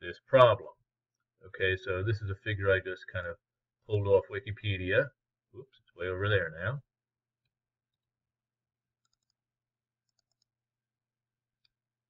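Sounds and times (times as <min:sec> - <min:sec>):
faint mouse clicks: 0:09.0 - 0:09.4, 0:10.0 - 0:10.5.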